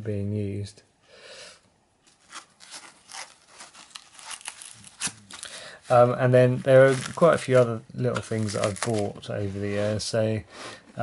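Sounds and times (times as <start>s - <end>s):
crinkly rustling: 2.0s - 10.1s.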